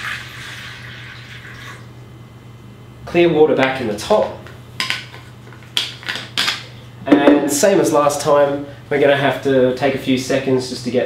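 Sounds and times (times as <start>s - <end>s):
plastic bottle knocking on table: 7.1s - 7.5s.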